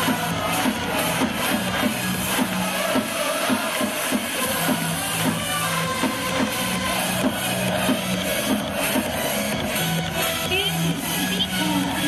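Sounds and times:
upbeat electronic music over loudspeakers: 0:00.0 - 0:12.0.

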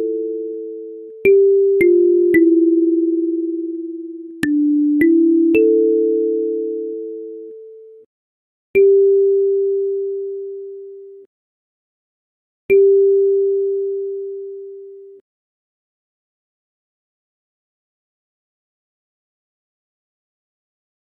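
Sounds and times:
kalimba notes: 0:01.2 - 0:06.9.

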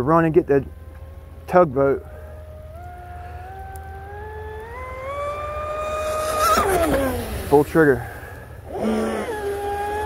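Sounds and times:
electric speedboat motor whine: 0:00.0 - 0:10.0.

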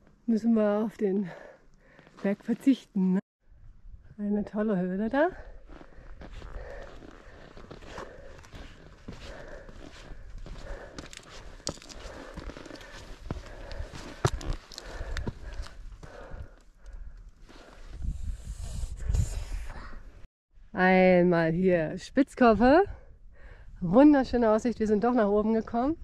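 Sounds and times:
footsteps on granite rock: 0:05.6 - 0:16.4.

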